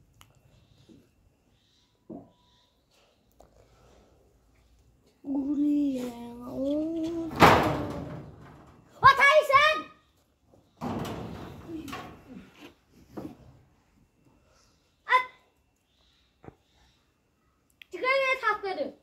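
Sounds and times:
knocks and rustles: 0:10.6 - 0:13.6.

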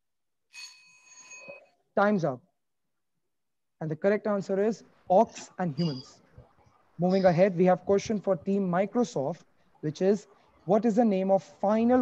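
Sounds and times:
bell ringing: 0:00.6 - 0:01.7.

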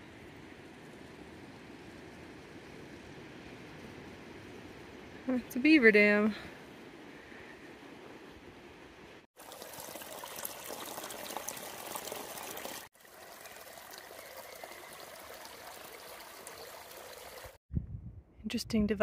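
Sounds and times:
creek trickling over rocks: 0:09.4 - 0:17.6.

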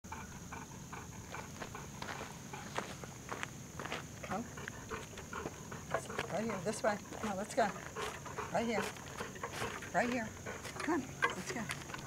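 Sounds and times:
footsteps crunching on gravel: 0:01.6 - 0:12.0.

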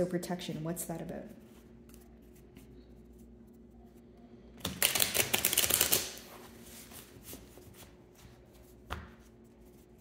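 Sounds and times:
cards being shuffled: 0:04.6 - 0:07.6.

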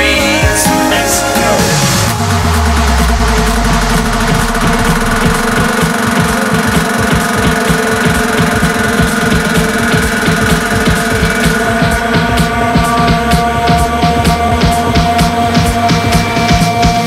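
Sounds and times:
held synth tones: 0:00.0 - 0:17.0
pulsing bass line: 0:00.0 - 0:17.0.

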